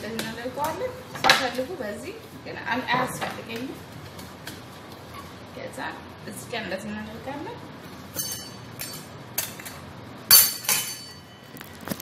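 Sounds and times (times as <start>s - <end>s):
utensils and dishes clinking: 8.1s - 12.0s.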